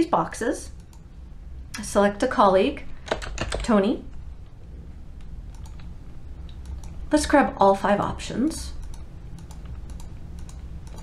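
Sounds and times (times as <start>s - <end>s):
low steady hum: 0.0s - 11.0s
computer mouse clicking: 0.8s - 1.1s, 5.2s - 7.0s, 8.8s - 11.0s.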